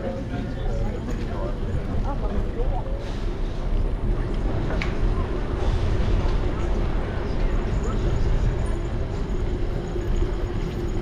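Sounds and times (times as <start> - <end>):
people's voices: 0.0 - 10.9.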